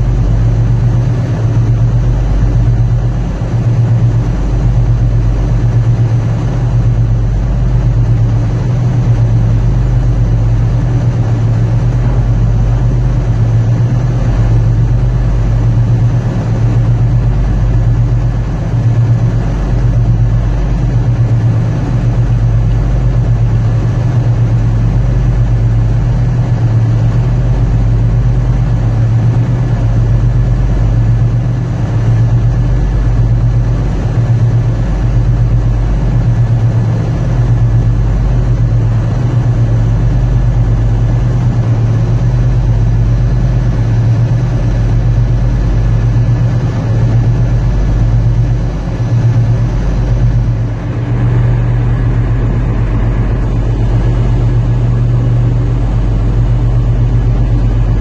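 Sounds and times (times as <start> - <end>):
boat diesel engines running: 0.0 - 58.0.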